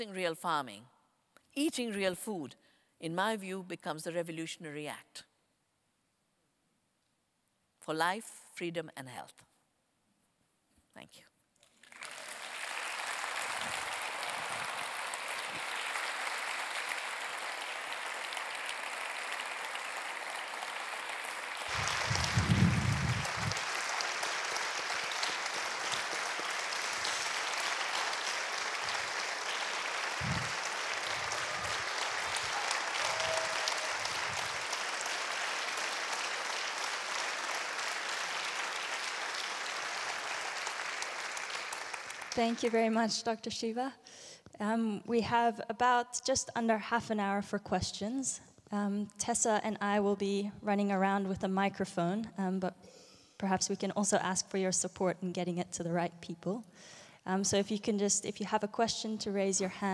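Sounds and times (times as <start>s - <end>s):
audience applauding: 11.6s - 42.9s.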